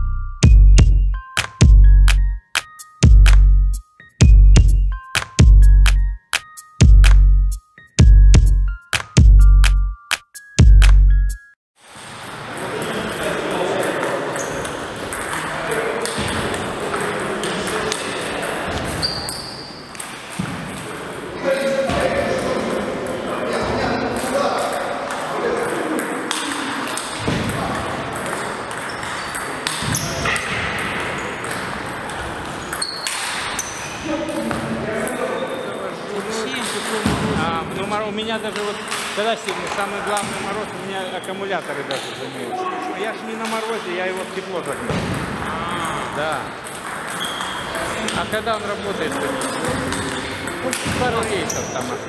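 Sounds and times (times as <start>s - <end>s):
table tennis ball striking: 26.3s - 31.9s, 46.6s - 47.7s.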